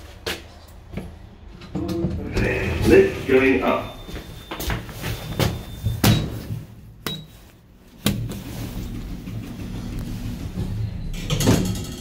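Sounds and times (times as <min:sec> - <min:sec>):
low hum of moving lift: 0:00.4 - 0:12.0.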